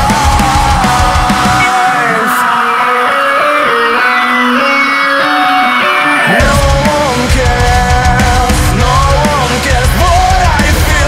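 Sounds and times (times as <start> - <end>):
electric guitar bending notes: 0.0 - 11.0.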